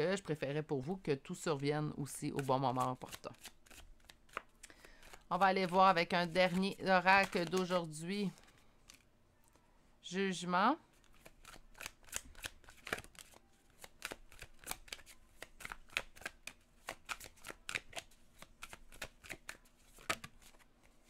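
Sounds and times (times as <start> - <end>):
cards being shuffled: 2.0 - 9.6, 10.9 - 21.0.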